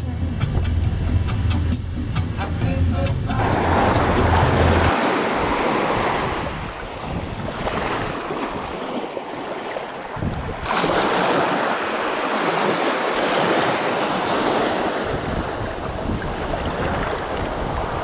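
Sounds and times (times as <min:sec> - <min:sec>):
small waves washing on sand: 0:03.4 - 0:18.0
wind on microphone: 0:03.4 - 0:18.0.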